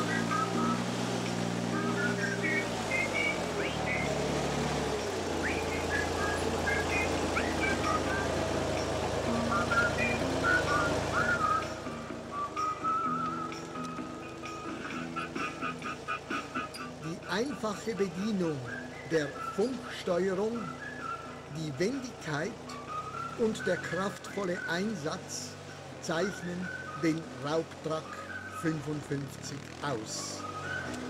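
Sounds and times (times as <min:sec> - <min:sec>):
diesel engine running: 0:00.0 - 0:31.0
high whistled chirps: 0:01.7 - 0:17.5, 0:18.2 - 0:28.9, 0:30.2 - 0:31.0.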